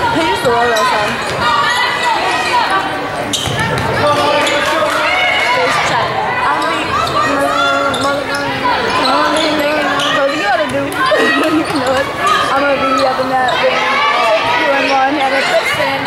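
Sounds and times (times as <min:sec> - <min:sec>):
spectators' voices echoing: 0:00.0 - 0:16.0.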